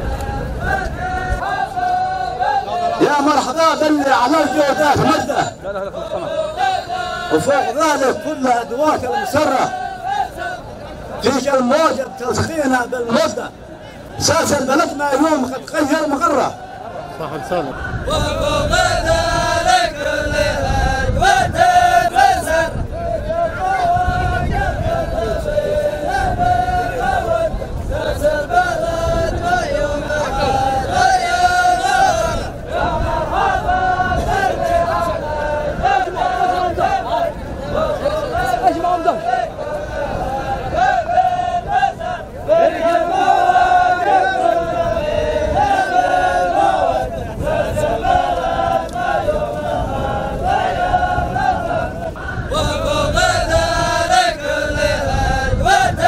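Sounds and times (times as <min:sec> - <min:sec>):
men chanting in unison: 0:00.0 - 0:56.0.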